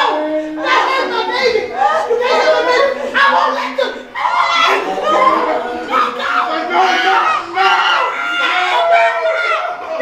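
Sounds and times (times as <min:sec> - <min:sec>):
people wailing and crying out: 0:00.0 - 0:10.0.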